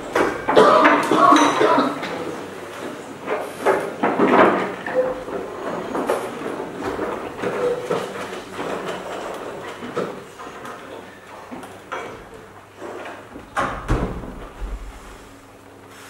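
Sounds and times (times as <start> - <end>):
knocks and scrapes of props: 2.8 - 10.7.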